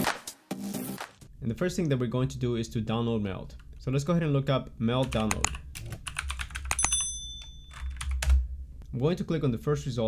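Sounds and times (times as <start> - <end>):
computer keyboard keystrokes: 5.0 - 8.4
high bell chime: 6.8 - 8.0.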